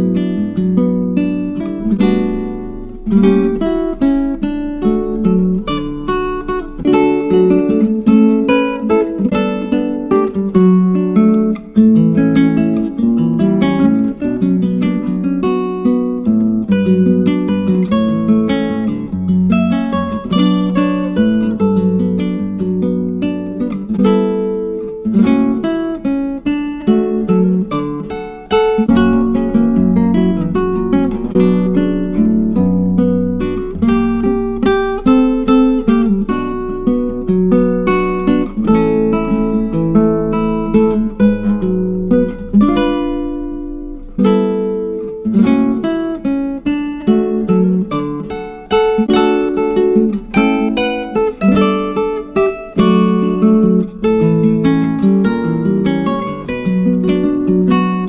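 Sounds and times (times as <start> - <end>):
acoustic guitar plucking: 0.0 - 58.0.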